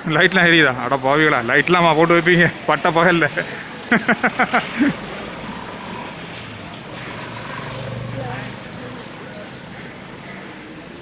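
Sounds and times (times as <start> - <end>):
street traffic noise: 0.0 - 11.0
vehicle engine humming past: 4.1 - 11.0.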